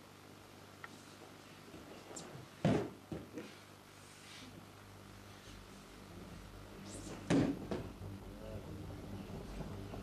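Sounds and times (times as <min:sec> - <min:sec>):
body landing on a mat: 0:02.6 - 0:03.3.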